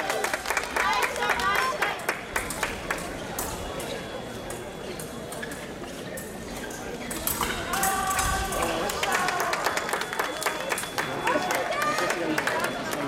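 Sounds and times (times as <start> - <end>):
hubbub of many voices: 0.0 - 13.0.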